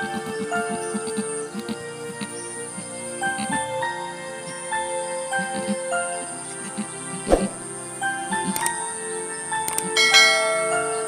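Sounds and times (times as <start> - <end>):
background music: 0.0 - 11.0
bell-like chime: 10.0 - 11.0.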